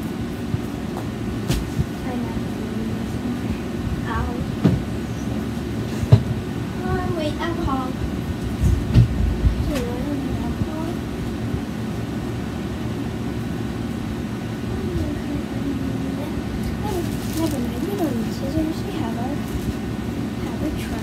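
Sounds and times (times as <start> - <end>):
low rumbling hum: 0.0 - 21.0.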